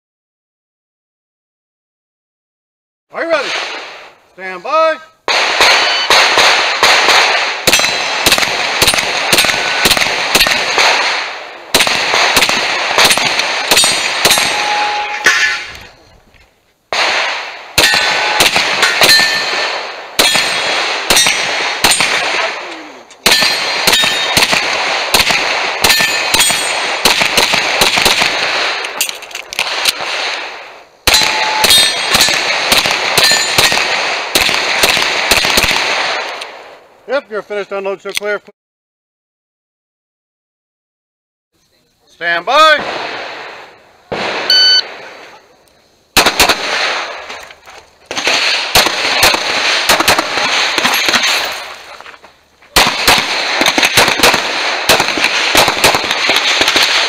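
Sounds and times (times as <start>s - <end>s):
fast gunshots: 3.3s - 4.1s, 5.3s - 15.0s, 16.9s - 29.0s, 29.6s - 36.7s, 42.6s - 45.4s, 46.2s - 47.4s, 48.1s - 51.9s, 52.7s - 57.0s
steel targets clanging: 13.1s - 16.0s, 17.8s - 19.6s, 23.2s - 24.4s, 25.9s - 26.8s, 31.1s - 32.4s, 33.2s - 33.6s.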